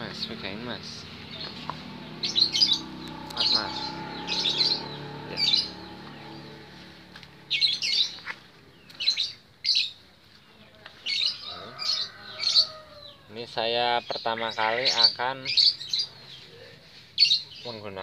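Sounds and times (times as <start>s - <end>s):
small birds chirping: 0.0s - 18.0s.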